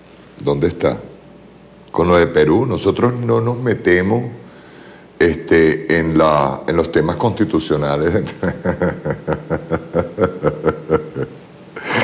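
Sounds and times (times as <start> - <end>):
man laughing: 8.2 - 12.0.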